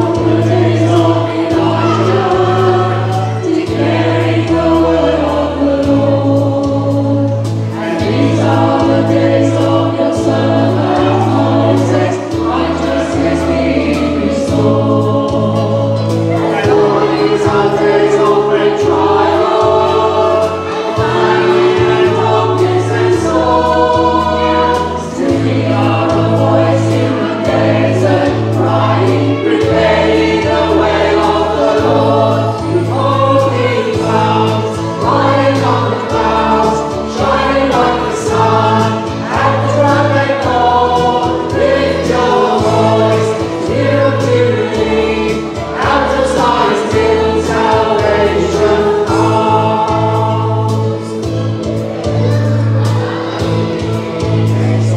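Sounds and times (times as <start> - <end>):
choir singing a hymn: 0.0 - 54.9
instrumental accompaniment: 0.0 - 54.9.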